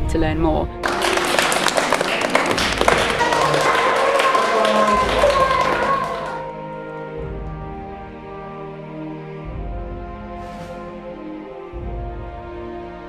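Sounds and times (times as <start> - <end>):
background music: 0.0 - 13.0
children clapping hands: 0.8 - 6.6.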